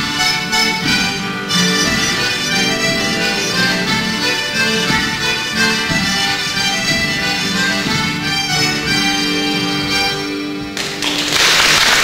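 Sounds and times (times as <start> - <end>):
accordion and steel guitar chord: 0.0 - 10.8
audience applause: 10.8 - 12.0.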